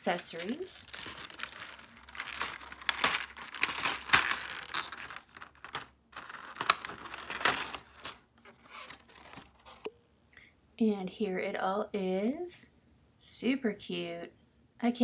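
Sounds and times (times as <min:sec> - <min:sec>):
plastic blister tray crinkling: 0:00.0 - 0:09.9.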